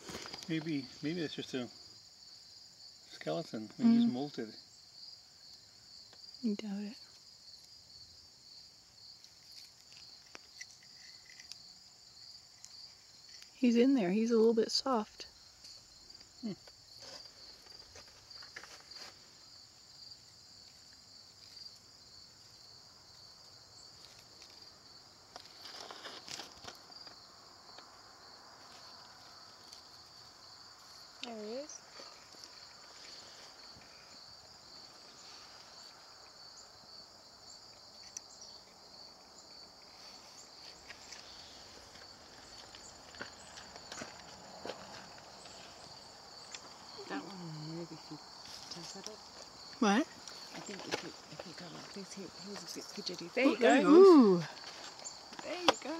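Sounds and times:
insects trilling: 0.0 - 55.9.

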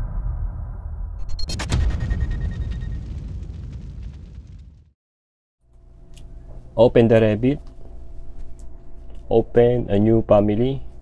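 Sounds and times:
low cinematic boom rumble: 0.0 - 5.0.

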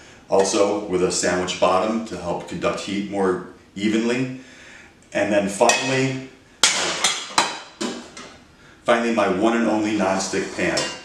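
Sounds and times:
metal pans clanking: 6.6 - 8.4, 10.4 - 11.0.

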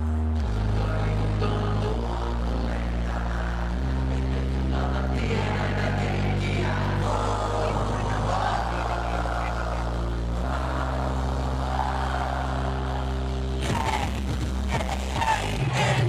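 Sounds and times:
sustained synthesizer chords: 0.0 - 16.0.

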